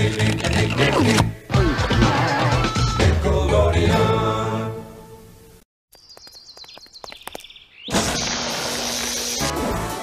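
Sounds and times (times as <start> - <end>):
small birds chirping: 5.9 - 8.0.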